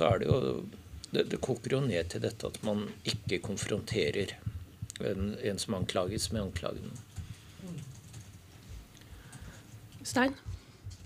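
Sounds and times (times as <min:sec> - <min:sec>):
laptop keyboard typing: 0:05.8 - 0:08.5.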